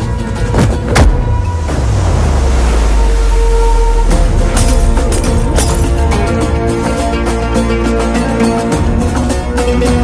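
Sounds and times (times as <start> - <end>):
sea waves crashing over rocks: 1.3 - 5.8.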